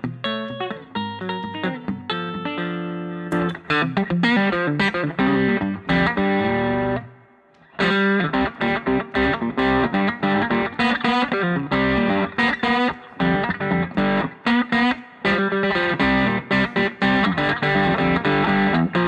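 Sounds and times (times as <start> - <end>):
electric guitar chords: 0.0 - 19.0.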